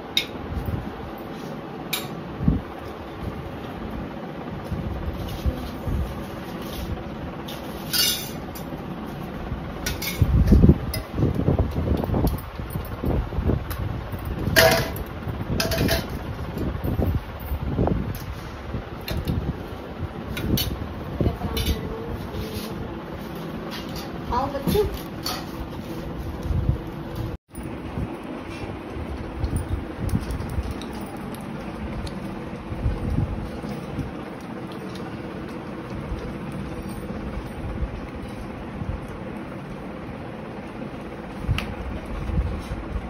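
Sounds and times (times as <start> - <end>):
steady background hum: 0.0 - 43.0
steel dishes clinking: 7.9 - 8.4.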